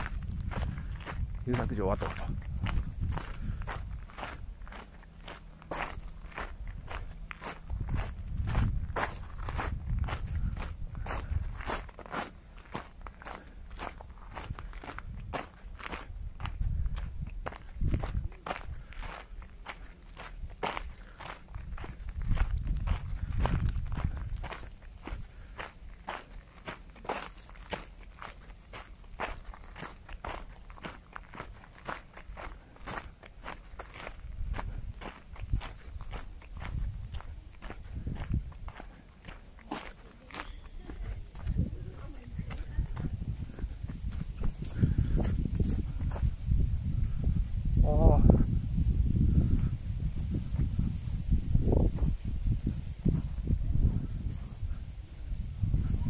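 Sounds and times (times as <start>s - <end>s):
footsteps on gravel: 0.0s - 47.0s.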